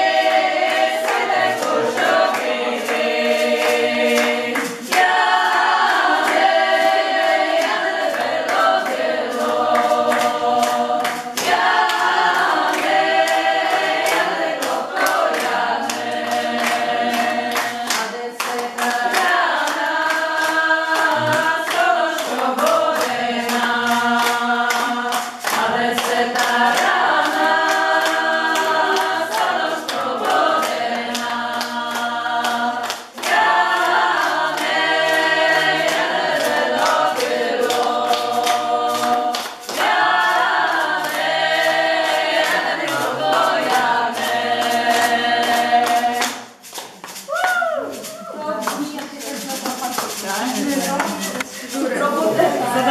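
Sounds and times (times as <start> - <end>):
women singing unaccompanied: 0.0 - 46.4.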